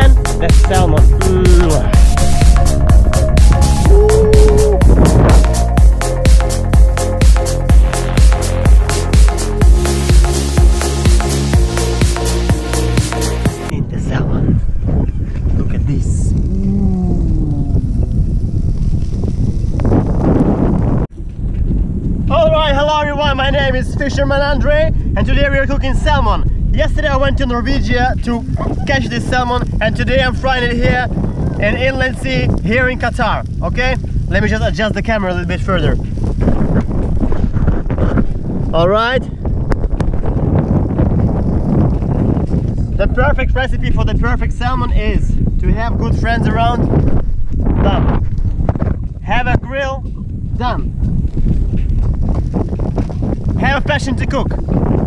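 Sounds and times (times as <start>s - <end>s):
wind buffeting microphone: 0.0s - 10.8s, 13.4s - 55.0s.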